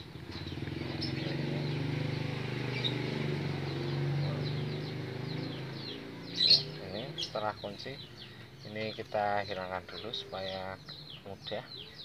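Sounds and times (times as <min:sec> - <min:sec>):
vehicle engine passing by: 0:00.0 - 0:11.2
birds chirping faintly: 0:00.0 - 0:12.0.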